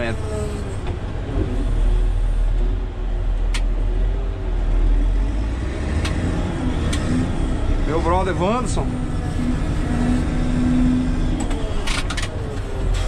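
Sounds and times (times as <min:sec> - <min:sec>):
diesel engine low rumble: 0:00.0 - 0:13.0.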